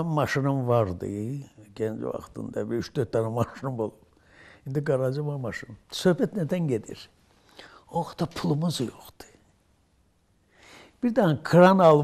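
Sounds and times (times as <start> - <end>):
breathy in-breath: 4.2 - 4.6, 7.4 - 7.9, 10.5 - 11.0.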